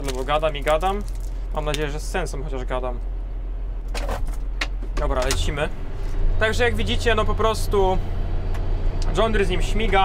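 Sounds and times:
plastic rustle: 0:00.0 - 0:01.9
tractor diesel engine droning: 0:00.0 - 0:10.0.

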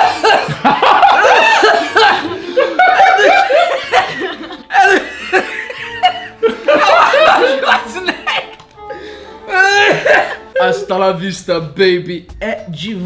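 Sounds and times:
people laughing: 0:00.0 - 0:10.8.

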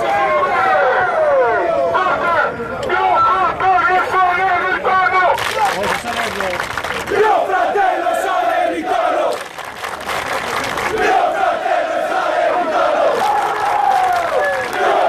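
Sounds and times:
crowd chanting in unison: 0:07.1 - 0:09.4, 0:10.8 - 0:15.0.

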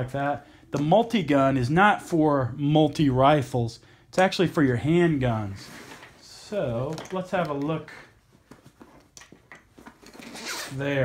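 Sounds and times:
nylon case rustling: 0:08.3 - 0:10.8.

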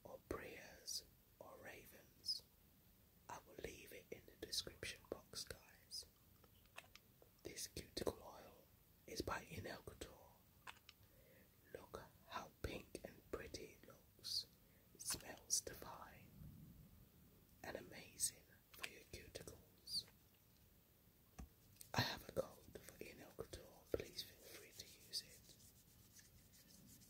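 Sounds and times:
woman whispering: 0:00.0 - 0:02.4, 0:03.3 - 0:06.1, 0:07.5 - 0:10.4, 0:11.6 - 0:16.3, 0:17.6 - 0:20.1, 0:21.9 - 0:25.5.

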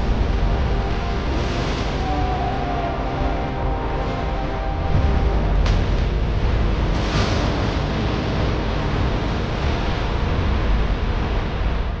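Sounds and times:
deep rumble: 0:00.0 - 0:12.0
wind-like cinematic noise: 0:00.0 - 0:12.0.

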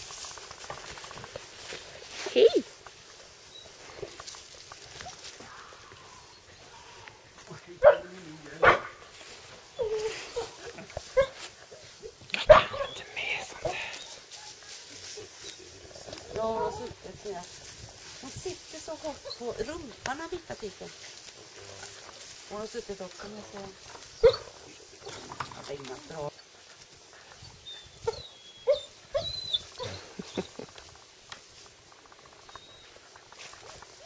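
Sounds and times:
dog barking: 0:07.8 - 0:09.0, 0:11.2 - 0:11.4, 0:12.5 - 0:12.9, 0:24.2 - 0:24.5.

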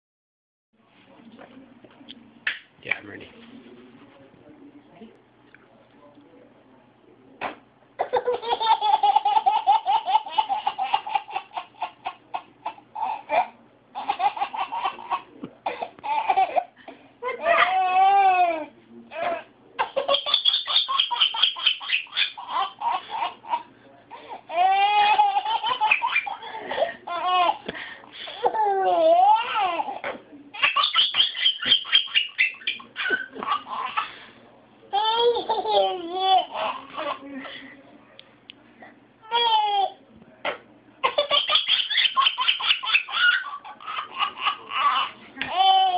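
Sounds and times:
baby laughing: 0:08.0 - 0:27.7, 0:28.3 - 0:34.2, 0:34.9 - 0:37.2, 0:39.2 - 0:40.0, 0:41.0 - 0:45.9.

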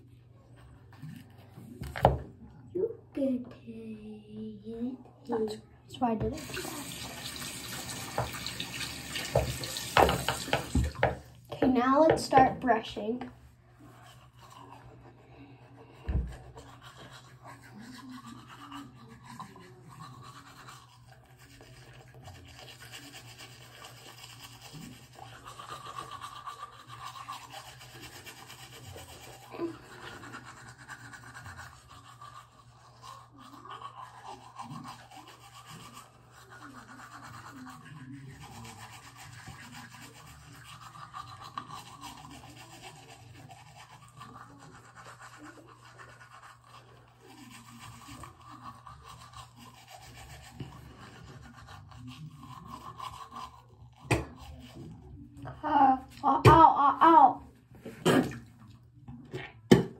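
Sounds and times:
toothbrush scrubbing teeth: 0:00.0 - 0:02.1, 0:03.2 - 0:59.9.

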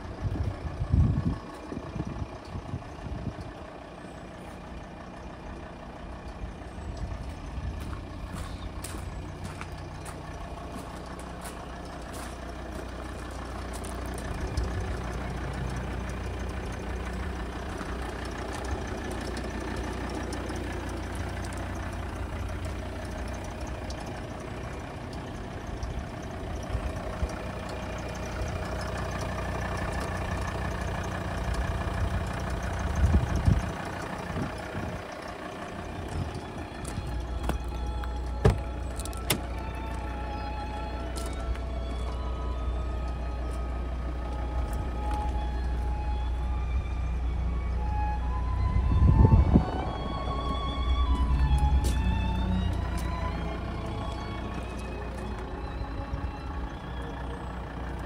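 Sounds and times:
vehicle engine idling: 0:00.0 - 0:58.0.

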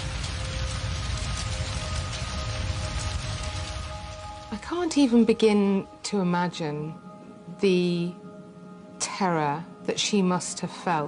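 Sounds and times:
fire crackling: 0:00.0 - 0:09.3
soft sustained music tones: 0:00.0 - 0:11.0.

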